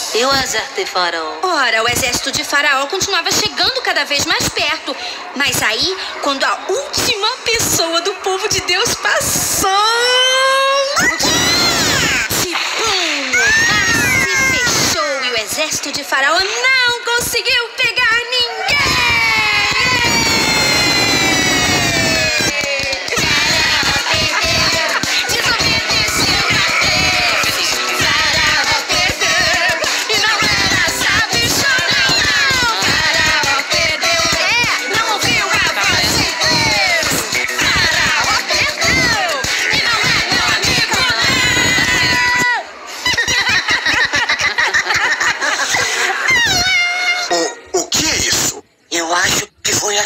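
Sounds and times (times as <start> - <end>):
jumble of voices: 0.0 - 43.0
music: 19.5 - 42.4.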